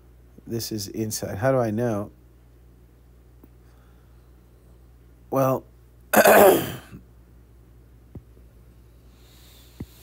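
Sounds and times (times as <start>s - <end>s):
man clearing throat: 6.1s - 7.0s.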